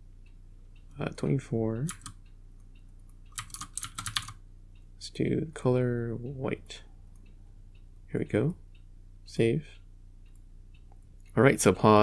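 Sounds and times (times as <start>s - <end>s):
keyboard and mouse clicks: 1.8s - 2.2s, 2.9s - 4.4s.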